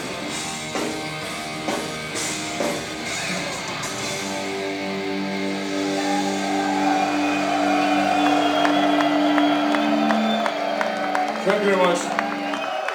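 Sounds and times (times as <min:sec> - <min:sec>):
heavy metal band chord: 0:00.0 - 0:10.2
crowd cheering: 0:03.0 - 0:12.9
crowd clapping: 0:05.8 - 0:12.9.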